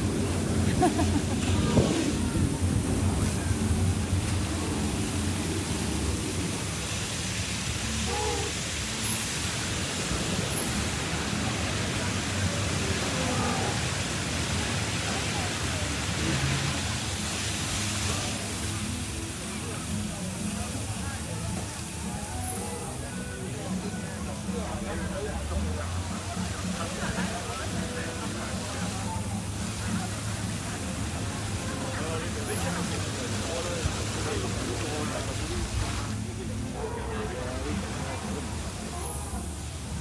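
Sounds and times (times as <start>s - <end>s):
wind noise on microphone: 0.0s - 7.3s
faint distant voices: 0.0s - 40.0s.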